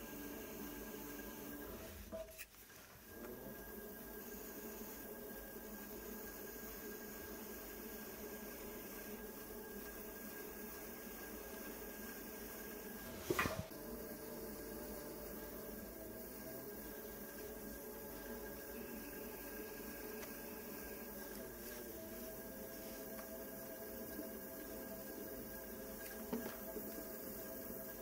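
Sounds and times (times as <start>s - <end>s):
electric pottery wheel running: 0.0s - 28.0s.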